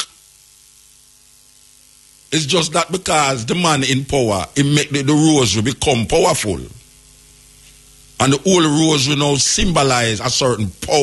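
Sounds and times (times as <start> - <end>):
faint hiss: 0.0 - 11.0
low electrical hum: 0.0 - 11.0.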